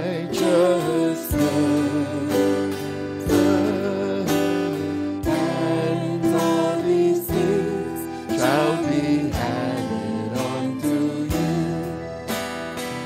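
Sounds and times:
acoustic guitar chords: 0.0 - 13.0.

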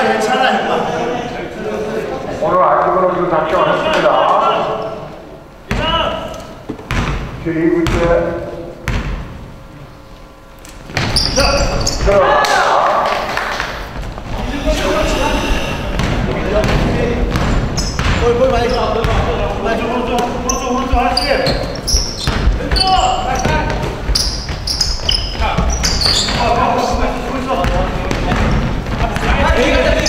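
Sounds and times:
basketball bouncing on wooden floor: 6.8 - 8.1, 15.9 - 19.4, 20.9 - 30.0
people shouting: 12.1 - 13.0.

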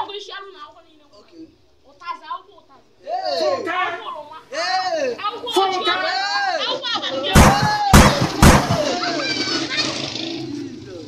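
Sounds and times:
boys talking: 0.0 - 10.4.

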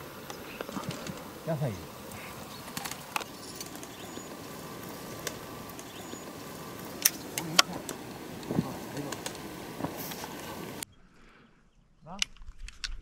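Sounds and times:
outdoor background noise: 0.0 - 13.0
sharp clicks: 0.2 - 10.5.

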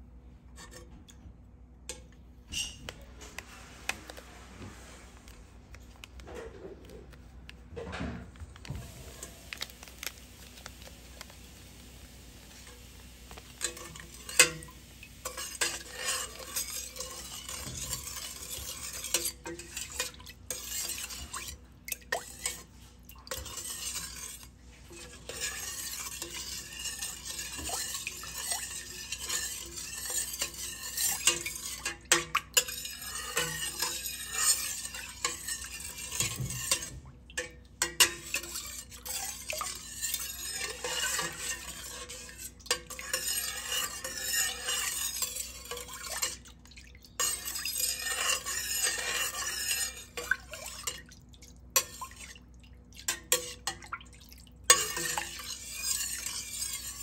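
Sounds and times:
liquid swishing in a pot: 0.0 - 57.0
ladle scraping metal pot: 0.5 - 1.1, 1.9 - 57.0.

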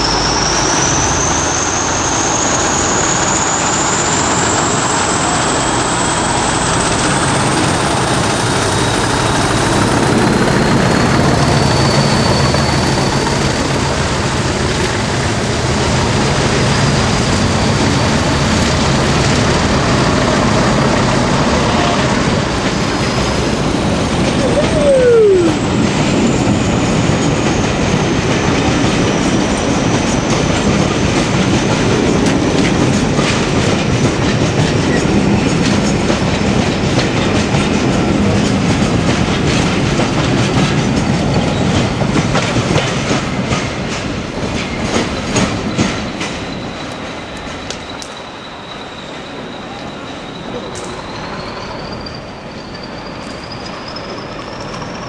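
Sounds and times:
train wheels rumbling on track: 0.0 - 55.0
falling tone: 24.3 - 25.8
wheels clicking over rail joints: 26.3 - 48.2.

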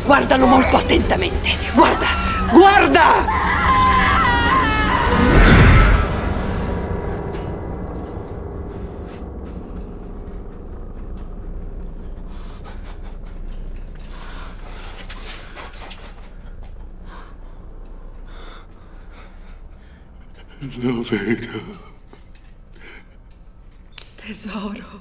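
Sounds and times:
low rumbling drone: 0.0 - 24.0
deep boom: 4.7 - 13.4
faint breathing: 12.0 - 20.7.

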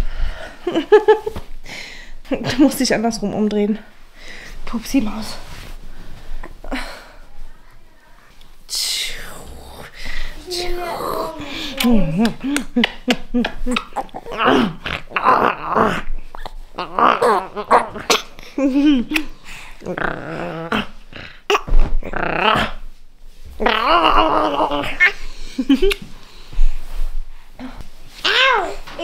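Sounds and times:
woman whispering: 7.3 - 12.2
person making playful growls: 9.4 - 12.6, 13.3 - 18.1, 19.8 - 22.8, 23.6 - 25.2.

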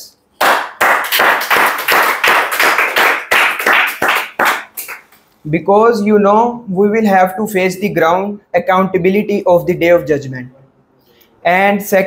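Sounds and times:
people clapping: 0.4 - 5.3.

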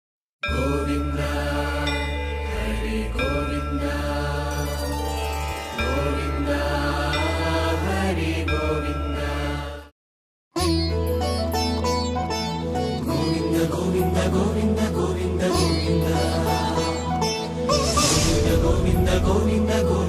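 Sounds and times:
chanted mantra: 0.5 - 4.8, 18.2 - 20.0
steady low drone: 17.8 - 20.0.

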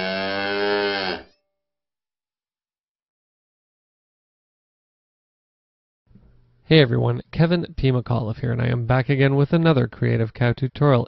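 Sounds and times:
cow mooing: 0.0 - 1.4.

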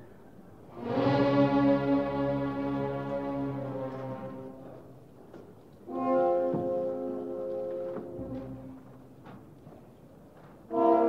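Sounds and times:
orchestra loud held brass chord: 0.7 - 4.9, 5.9 - 8.8, 10.7 - 11.0.

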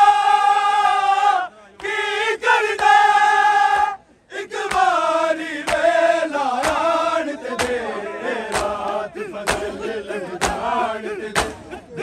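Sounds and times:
men chanting together: 0.0 - 12.0.

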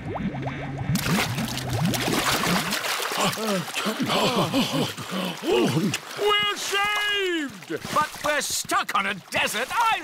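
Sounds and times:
rising bubbling blips: 0.0 - 2.9
splashing water: 0.8 - 10.0.

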